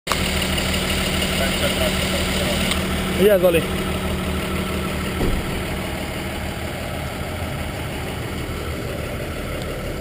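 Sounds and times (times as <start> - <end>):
truck engine idling: 0.1 - 10.0.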